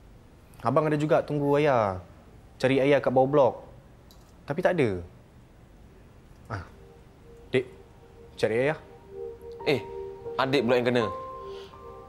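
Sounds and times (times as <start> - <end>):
faint steady musical tone: 5.2 - 12.0
man saying ah: 6.5 - 6.8.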